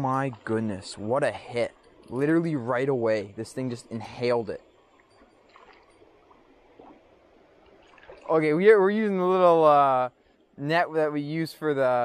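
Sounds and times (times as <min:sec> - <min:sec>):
creek water trickling: 0:00.0 - 0:11.9.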